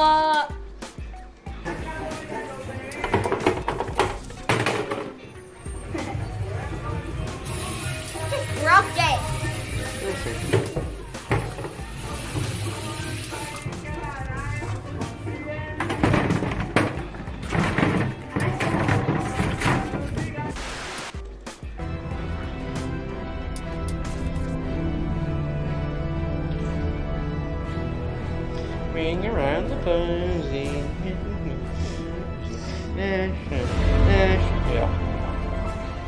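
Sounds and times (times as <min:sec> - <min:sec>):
music from a video: 0:00.0 - 0:36.0.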